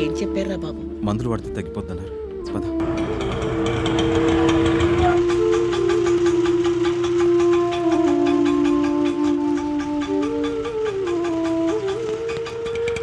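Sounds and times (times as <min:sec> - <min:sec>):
wind instrument held notes: 0:01.2 - 0:13.0.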